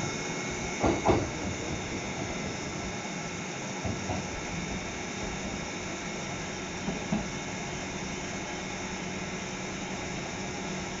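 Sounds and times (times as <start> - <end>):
electric trains humming: 0.0 - 11.0.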